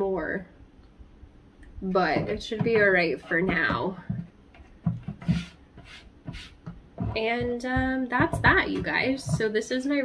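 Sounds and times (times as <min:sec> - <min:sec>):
pot rubbing and knocking on table: 0:02.0 - 0:09.9.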